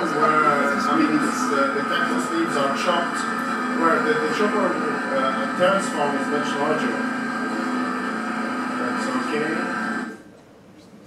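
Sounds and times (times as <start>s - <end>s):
small engine droning over loudspeakers: 0.0s - 10.2s.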